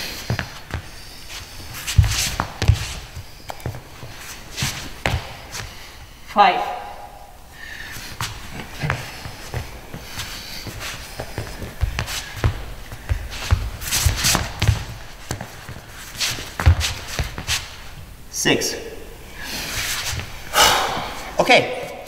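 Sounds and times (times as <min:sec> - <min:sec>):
athletic shoes shuffling on floor: 0:00.0 - 0:06.1, 0:07.9 - 0:18.0, 0:19.6 - 0:21.3.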